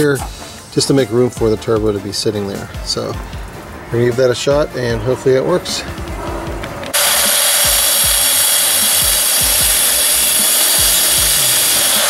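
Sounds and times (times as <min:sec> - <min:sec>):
background music with steady beat: 0:00.0 - 0:12.0
power tool cutting metal: 0:06.9 - 0:12.0.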